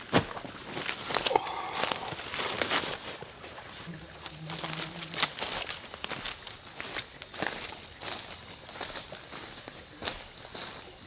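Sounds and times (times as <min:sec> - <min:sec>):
crunching and rustling: 0:00.0 - 0:11.0.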